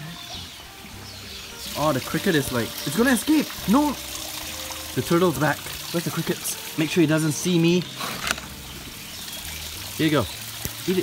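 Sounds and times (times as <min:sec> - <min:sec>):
water trickling: 0:00.0 - 0:11.0.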